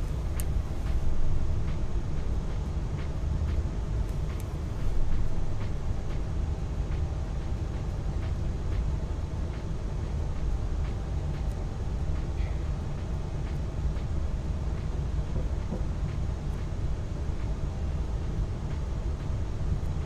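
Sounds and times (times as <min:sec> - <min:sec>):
low room rumble: 0:00.0 - 0:20.0
faint light ticks: 0:01.6 - 0:06.3.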